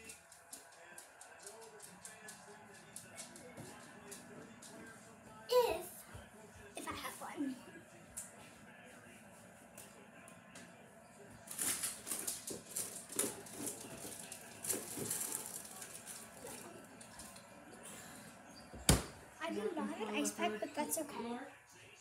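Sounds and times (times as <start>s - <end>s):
rummaging clatter and rustling: 11.5s - 16.6s.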